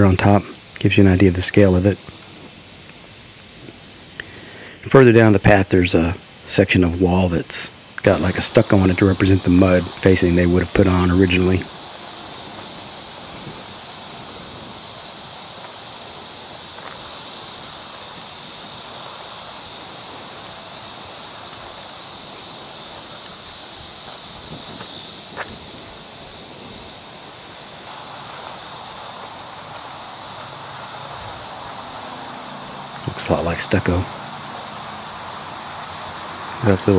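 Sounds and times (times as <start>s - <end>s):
insects chirring: 0.0s - 36.9s.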